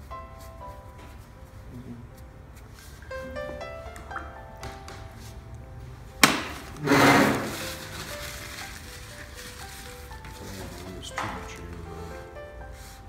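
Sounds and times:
background music with held notes: 0:00.0 - 0:13.0.

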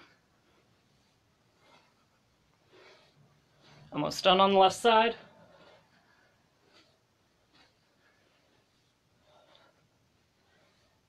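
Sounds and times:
faint breaths: 0:00.0 - 0:04.0, 0:05.2 - 0:11.0.

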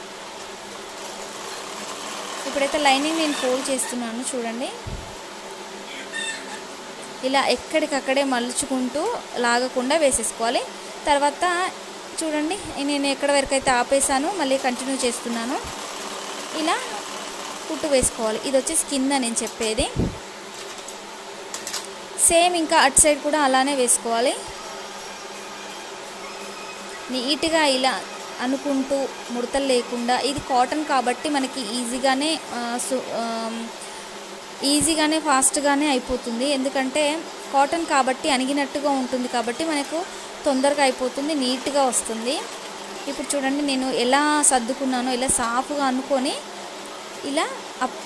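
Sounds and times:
background hum: 0:00.0 - 0:48.0
even hiss: 0:00.0 - 0:48.0
sewing machine running: 0:00.9 - 0:03.9, 0:14.2 - 0:18.9
woman speaking: 0:02.4 - 0:04.9, 0:07.2 - 0:15.7, 0:16.5 - 0:17.1, 0:17.7 - 0:20.2, 0:22.2 - 0:24.6, 0:27.1 - 0:33.8, 0:34.6 - 0:42.5, 0:43.1 - 0:46.5, 0:47.2 - 0:48.0.

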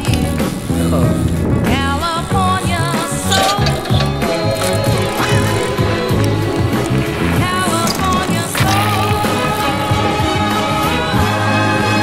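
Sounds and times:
bike tyres rolling on hard ground: 0:00.0 - 0:11.8.

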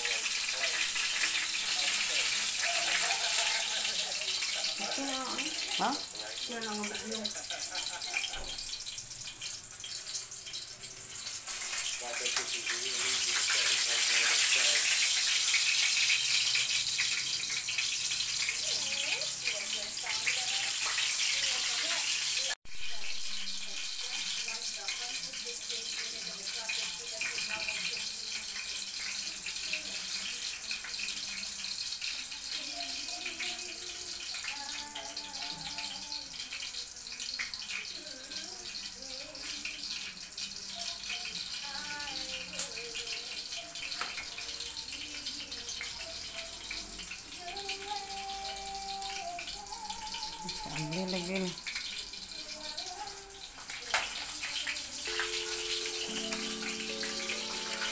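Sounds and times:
faint voices: 0:00.0 - 0:08.7
meat frying in hot oil: 0:00.0 - 0:57.9.

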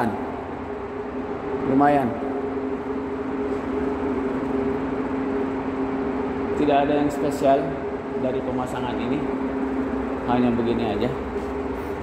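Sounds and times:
ventilation fans humming: 0:00.0 - 0:12.0.

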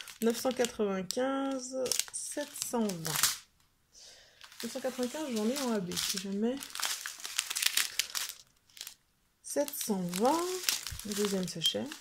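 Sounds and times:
plastic bags crinkling: 0:00.0 - 0:03.5, 0:04.2 - 0:12.0.

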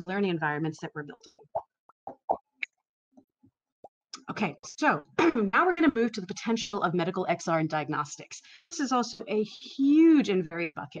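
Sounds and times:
mouth clicks and smacks: 0:01.3 - 0:02.8.

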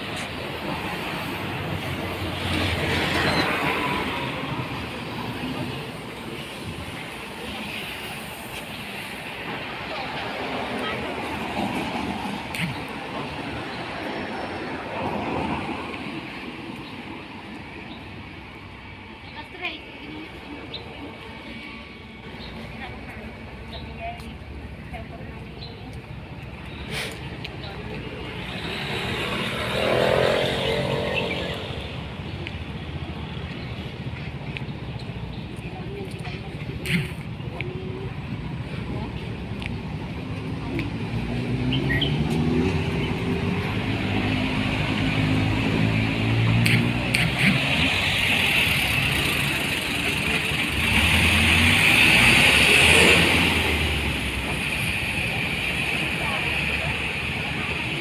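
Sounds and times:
cars passing on road: 0:00.0 - 0:58.0
steady background noise: 0:00.0 - 0:58.0.

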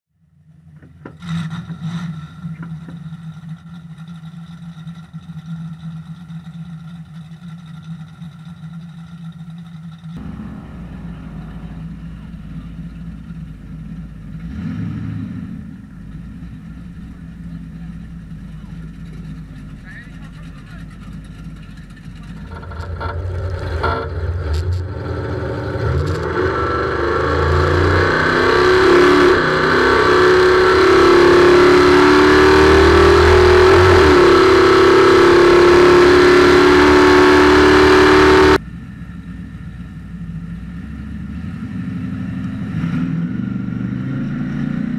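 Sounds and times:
car engine idling: 0:00.1 - 0:42.7.

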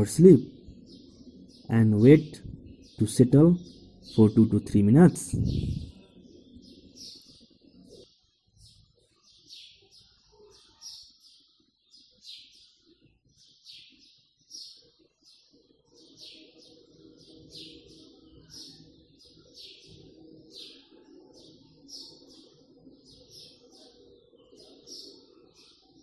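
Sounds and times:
high-pitched bird chirps: 0:00.0 - 0:08.0.

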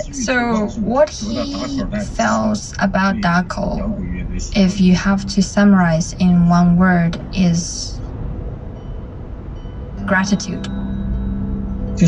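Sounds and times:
car road and engine rumble: 0:00.0 - 0:12.0
faint steady tones: 0:00.0 - 0:12.0.

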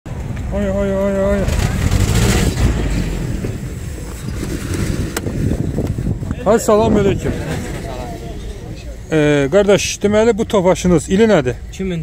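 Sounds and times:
loud irregular low rumble: 0:00.1 - 0:12.0.

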